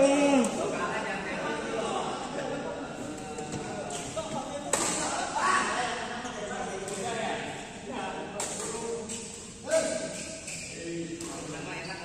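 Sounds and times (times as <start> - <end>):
people talking in echoing hall: 0.0 - 12.0
racket hitting shuttlecock: 4.7 - 5.0.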